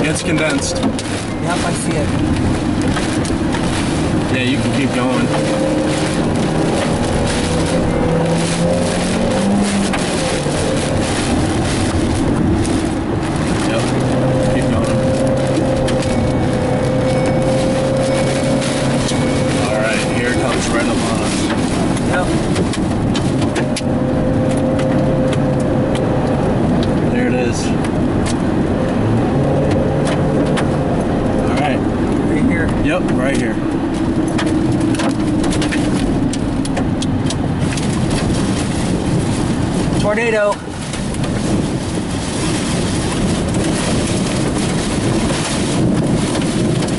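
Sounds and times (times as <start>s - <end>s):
car engine: 0.0s - 46.9s
rain pattering on windshield: 0.0s - 46.9s
road noise: 0.0s - 46.9s
windshield wipers sweeping: 0.0s - 46.9s.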